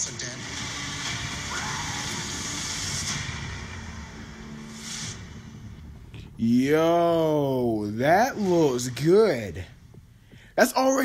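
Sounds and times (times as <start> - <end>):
rumbling hissing sound effects: 0.0 - 6.3.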